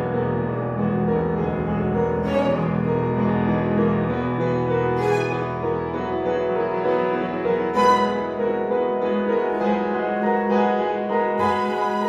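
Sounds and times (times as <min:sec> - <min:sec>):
piano: 0:00.0 - 0:12.0
bowed string notes: 0:01.4 - 0:06.2, 0:07.3 - 0:12.0.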